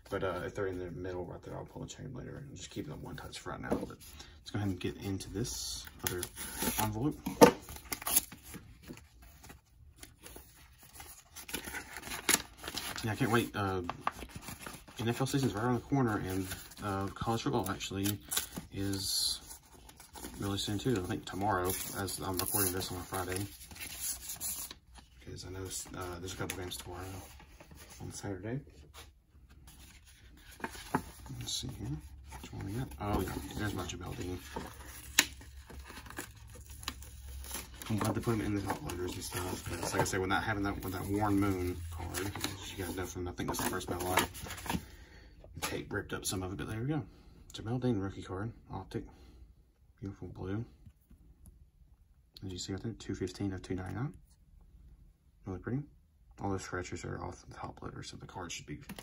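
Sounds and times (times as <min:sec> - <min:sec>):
paper rustling and crinkling: 0:03.7 - 0:44.9.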